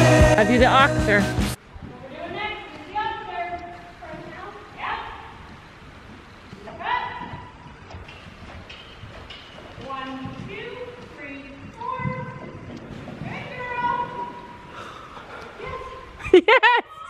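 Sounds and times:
horse hoofbeats on sand: 0:05.4 - 0:14.6.

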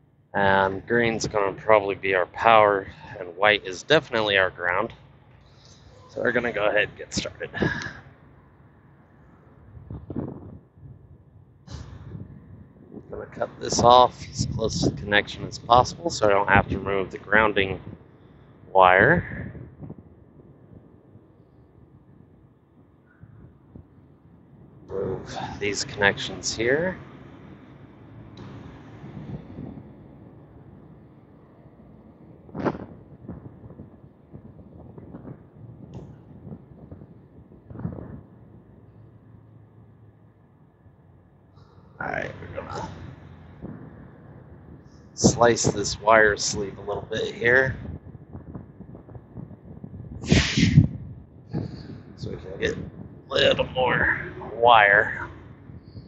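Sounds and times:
low background rumble: 0:00.0 - 0:56.0
sharp snap: 0:32.5 - 0:32.9.

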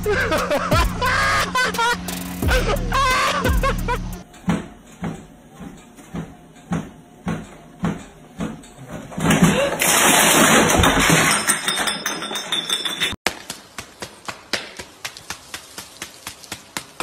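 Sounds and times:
bare feet thudding on treadmill belt: 0:04.4 - 0:09.7, 0:13.3 - 0:17.0
person falling off treadmill: 0:04.5 - 0:11.4.

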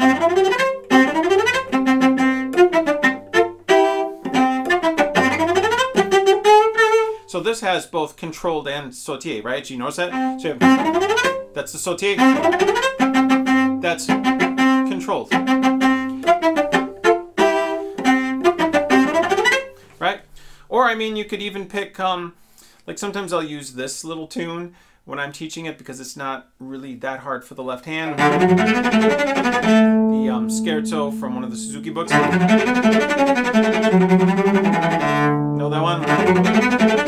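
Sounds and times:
solo cello short bowed notes: 0:00.0 - 0:07.4, 0:10.1 - 0:20.1, 0:28.2 - 0:37.0.

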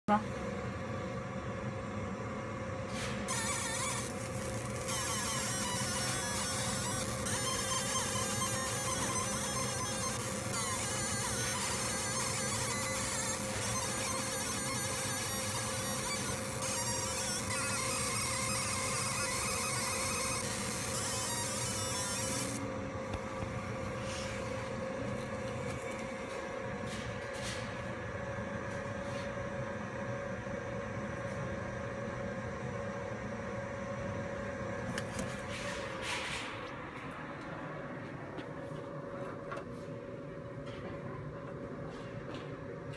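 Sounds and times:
machine hum: 0:00.1 - 0:42.9
laser marking high-pitched hiss: 0:03.3 - 0:22.6.

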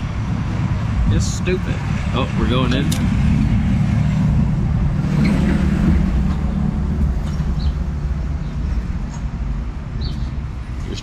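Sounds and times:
vehicles passing close by: 0:00.0 - 0:11.0.

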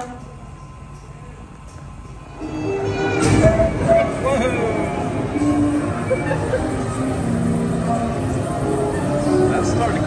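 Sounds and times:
soundtrack music with held notes: 0:01.6 - 0:10.0.

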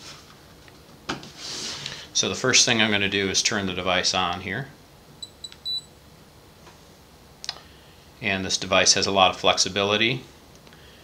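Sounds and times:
short high beeps: 0:05.2 - 0:05.9.

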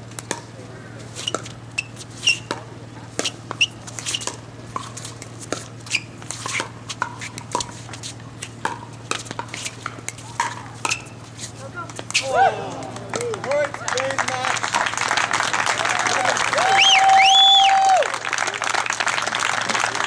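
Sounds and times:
shoes squeaking on court: 0:00.0 - 0:12.9
steady low hum: 0:00.0 - 0:16.5.

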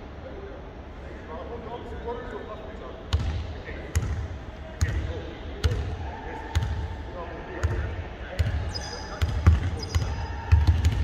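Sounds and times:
basketball bouncing on hardwood: 0:09.2 - 0:11.0.

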